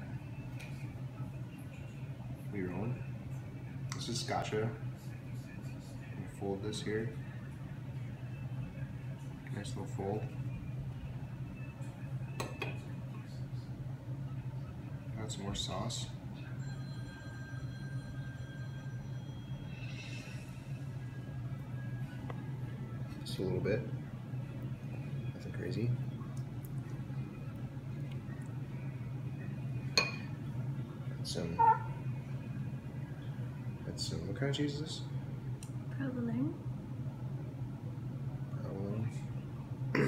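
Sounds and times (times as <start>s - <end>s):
steady low hum: 0.0s - 40.0s
utensil clinking against dish: 30.0s - 30.3s.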